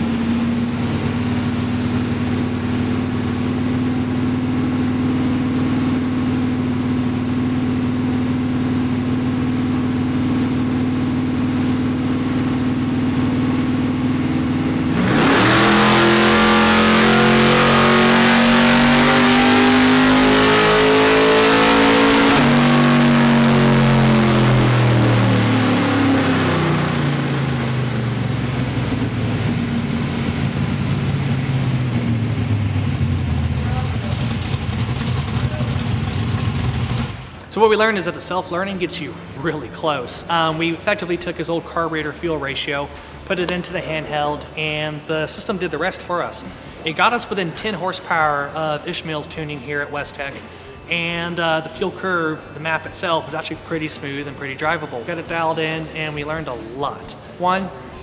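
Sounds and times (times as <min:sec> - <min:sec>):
car engine revving on dyno: 0:00.0 - 0:38.0.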